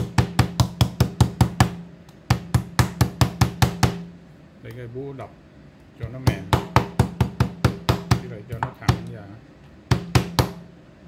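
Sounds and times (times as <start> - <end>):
meat mallet pounding meat: 0.0 - 4.1, 6.1 - 9.2, 9.9 - 10.7.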